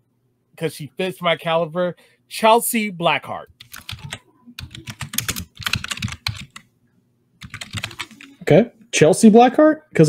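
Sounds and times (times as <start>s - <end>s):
keyboard typing: 3.5s - 6.7s, 7.4s - 8.4s.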